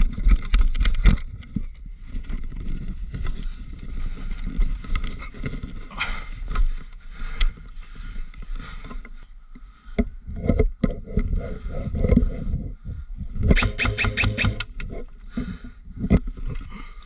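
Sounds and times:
camera handling rumble: 0.0 - 3.4, 13.4 - 16.7
clicks and knocks of rifle handling: 0.0 - 3.5.

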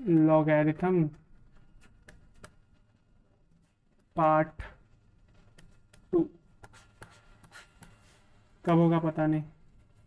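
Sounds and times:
pen scratching on paper: 5.4 - 8.5.

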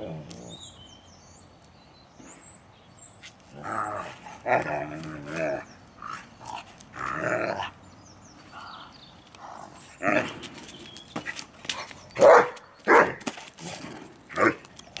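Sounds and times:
dogs growling: 3.5 - 7.8, 9.4 - 10.5
dogs barking: 11.8 - 13.2.

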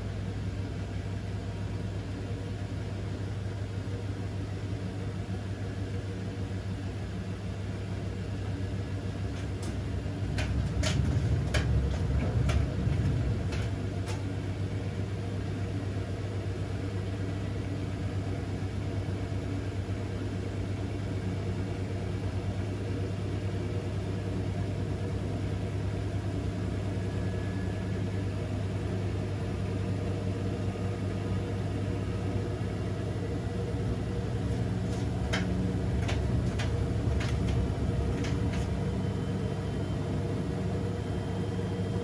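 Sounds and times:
washing machine motor humming: 0.0 - 42.0.

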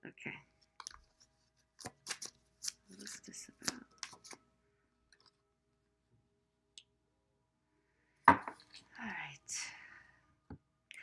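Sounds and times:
cards being shuffled: 0.8 - 4.4.

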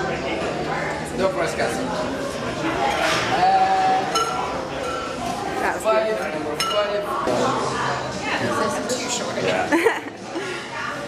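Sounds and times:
glass clinking: 4.1 - 5.2, 6.6 - 7.0.

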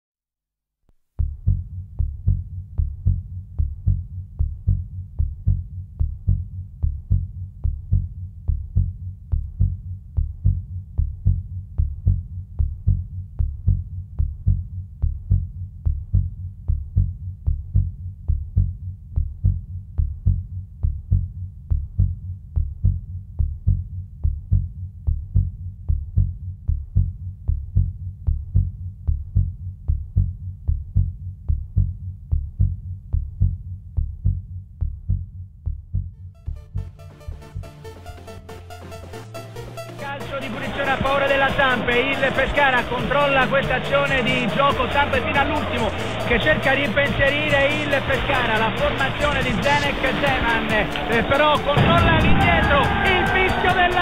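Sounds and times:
low heartbeat-like pulsing beat: 1.2 - 54.0.

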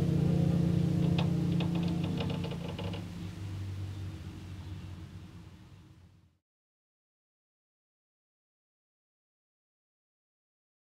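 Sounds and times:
low cello note: 0.0 - 4.6.

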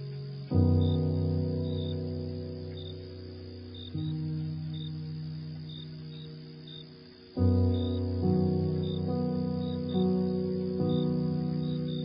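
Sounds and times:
crickets chirping: 0.0 - 12.0
slow music low note: 0.0 - 12.0.

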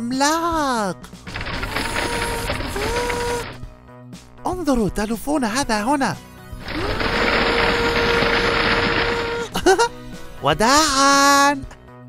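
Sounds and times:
toy mixer drum whirring: 1.2 - 3.6, 6.6 - 9.6.

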